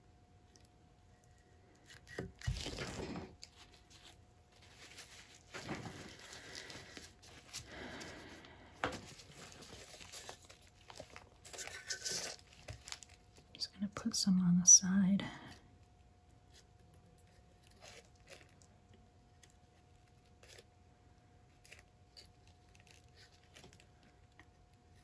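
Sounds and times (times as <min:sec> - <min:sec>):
gloved hands rustling and crinkling: 0:01.5 - 0:13.6.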